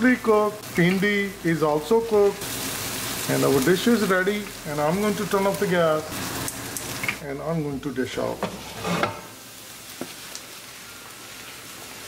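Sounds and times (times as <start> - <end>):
food sizzling in frying pan: 0.0 - 12.0.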